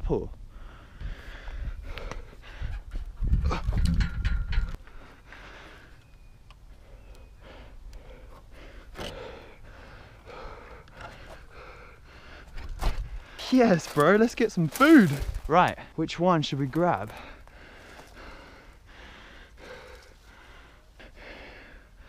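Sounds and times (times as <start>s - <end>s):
man breathing hard: 0.4s - 3.8s, 4.7s - 6.1s, 6.7s - 13.6s, 17.1s - 22.0s.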